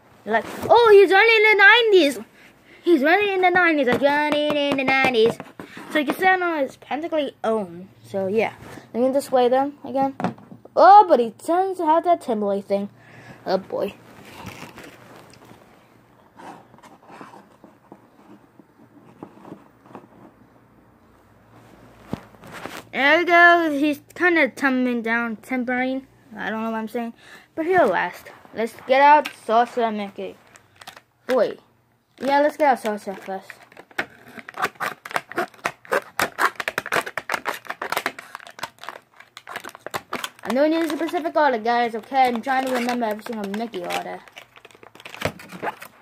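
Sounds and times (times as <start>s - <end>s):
plastic packaging crinkling: 13.9s - 15.7s, 30.4s - 31.1s, 32.2s - 46.0s.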